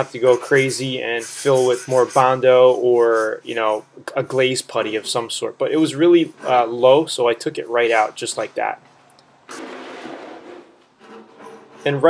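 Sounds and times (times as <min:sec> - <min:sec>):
sandpaper rasping on metal: 0:00.0 - 0:03.8, 0:09.5 - 0:12.0.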